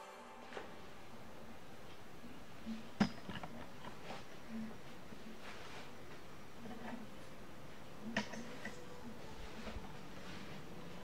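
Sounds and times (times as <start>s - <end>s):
soft rustles: 0.5s - 11.0s.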